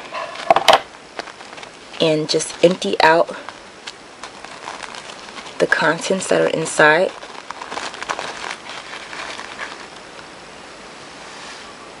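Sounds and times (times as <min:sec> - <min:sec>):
paper tea bag crinkling: 0:00.0 - 0:10.3
tea leaves rustling onto tabletop: 0:00.4 - 0:10.3.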